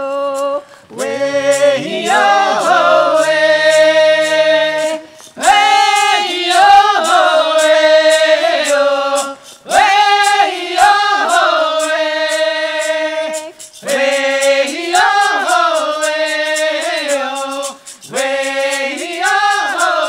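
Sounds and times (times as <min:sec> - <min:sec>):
group singing in unison: 0:00.0 - 0:20.0.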